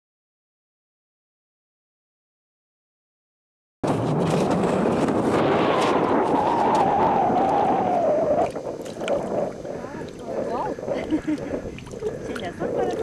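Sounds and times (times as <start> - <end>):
fish splashing in water: 6.1 - 13.0.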